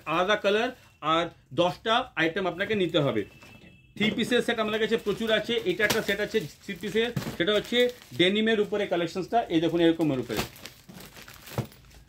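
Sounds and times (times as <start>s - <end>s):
plastic bags crinkling: 4.7s - 12.0s.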